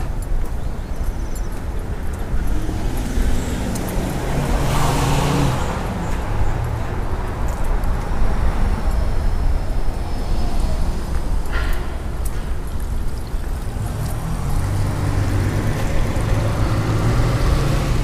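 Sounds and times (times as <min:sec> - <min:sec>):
low traffic rumble: 0:00.0 - 0:18.0
car passing: 0:02.4 - 0:09.0, 0:13.4 - 0:18.0.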